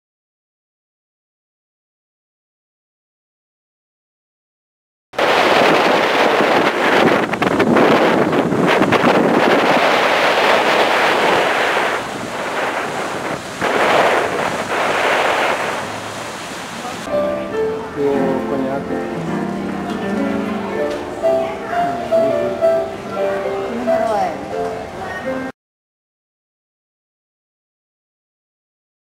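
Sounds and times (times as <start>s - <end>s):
wind buffeting microphone: 5.2s - 17.1s
rushing sea water: 5.2s - 25.5s
music with distinct notes: 17.1s - 25.5s.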